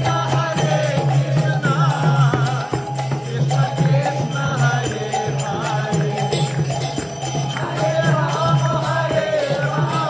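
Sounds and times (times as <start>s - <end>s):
hand cymbals ringing: 0.0s - 10.0s
voices chanting: 3.3s - 10.0s.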